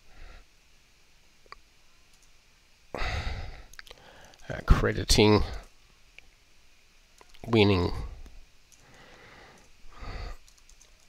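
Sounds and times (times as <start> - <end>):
faint clicks: 1.4 - 2.4, 3.6 - 4.5, 7.2 - 7.5, 8.2 - 11.0
man sighing: 2.9 - 4.3.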